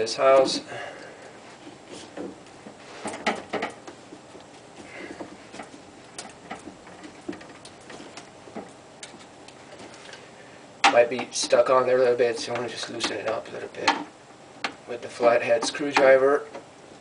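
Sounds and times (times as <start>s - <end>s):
tools clicking on pipe fittings: 5.2s - 9.3s.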